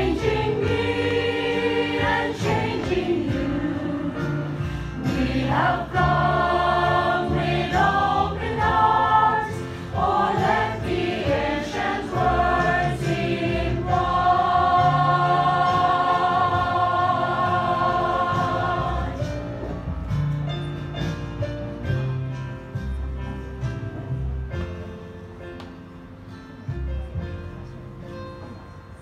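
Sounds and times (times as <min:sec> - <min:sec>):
choir singing gospel song: 0:00.0 - 0:19.7.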